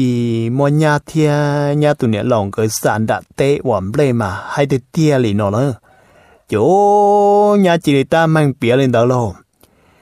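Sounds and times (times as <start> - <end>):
man speaking: 0.0 - 5.8, 6.5 - 9.5.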